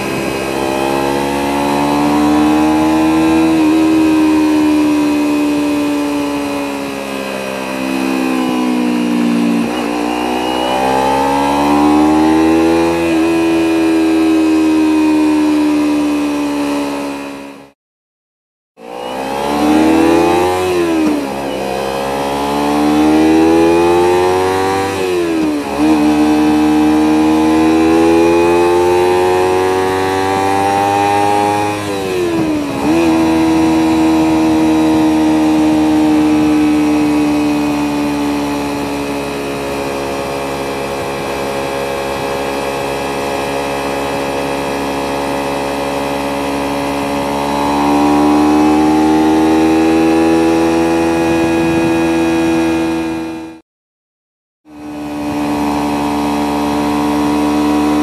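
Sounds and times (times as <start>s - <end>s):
motorcycle engine accelerating: 0.0s - 17.8s, 18.8s - 53.6s, 54.6s - 58.0s.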